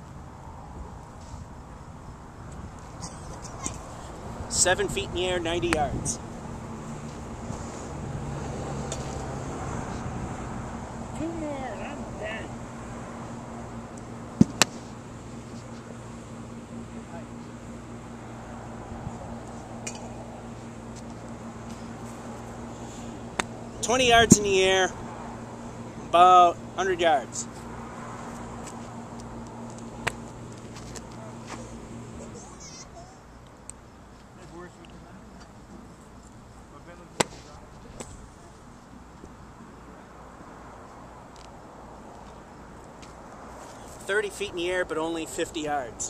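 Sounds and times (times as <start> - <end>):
low outdoor background hum: 0.0 - 46.0
golf club striking ball: 14.4 - 14.8, 23.3 - 23.6.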